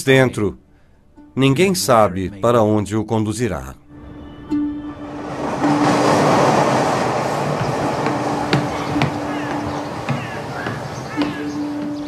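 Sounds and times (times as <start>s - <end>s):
train rushing rumble: 4.8s - 12.0s.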